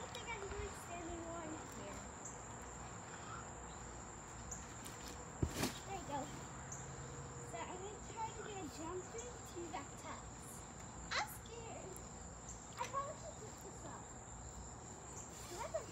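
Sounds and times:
insects singing: 0.0 - 15.9
thump on trampoline mat: 4.8 - 6.0.

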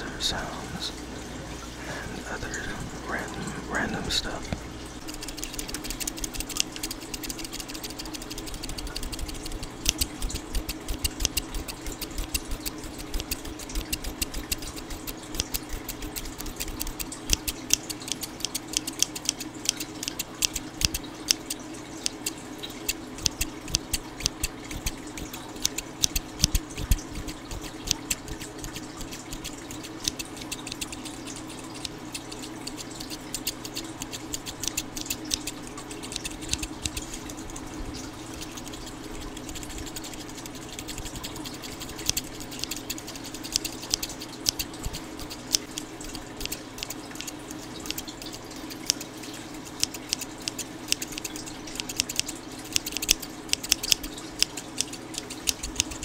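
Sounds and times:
scissors snipping: 5.0 - 37.4, 38.3 - 49.0, 49.7 - 56.0.

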